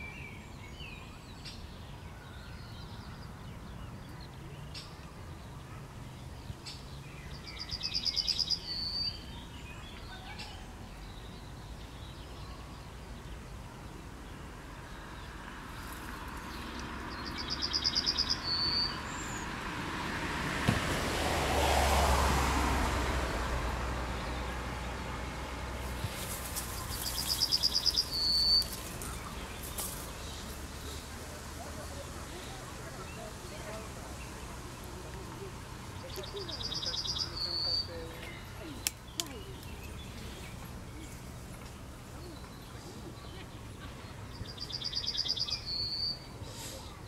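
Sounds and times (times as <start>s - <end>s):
bird singing: 0.0s - 15.3s, 16.4s - 19.6s, 26.2s - 31.1s, 35.4s - 47.0s.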